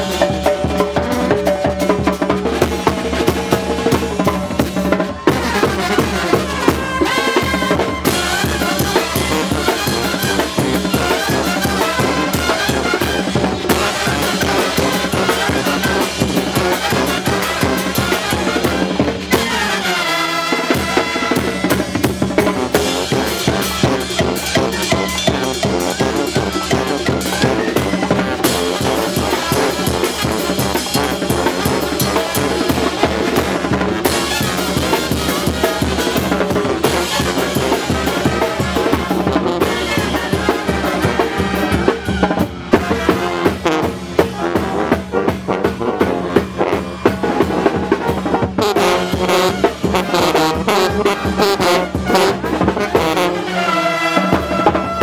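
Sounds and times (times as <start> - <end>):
brass band playing: 0.0 - 55.0
drum strokes: 20.8 - 53.4.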